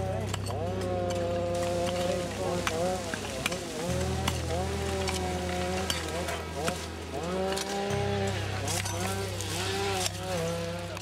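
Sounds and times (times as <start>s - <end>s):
low droning tones: 0.0s - 11.0s
undergrowth burning and crackling: 0.0s - 11.0s.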